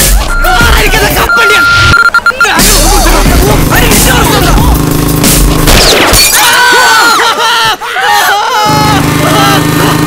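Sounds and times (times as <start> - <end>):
people shouting and yelling: 0.0 - 4.8, 6.0 - 10.0.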